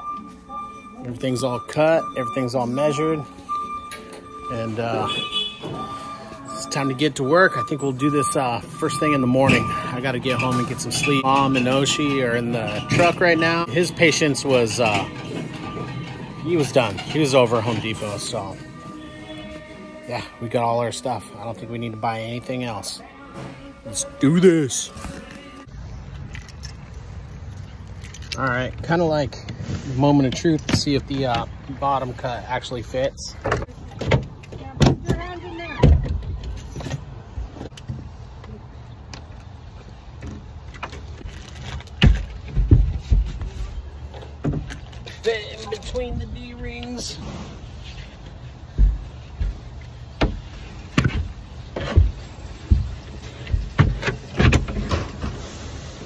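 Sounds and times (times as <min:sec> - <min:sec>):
background music: 0:00.0 - 0:25.7.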